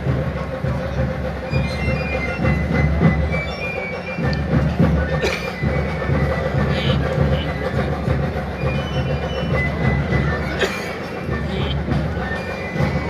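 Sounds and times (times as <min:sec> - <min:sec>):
crowd ambient rumble: 0:00.0 - 0:13.0.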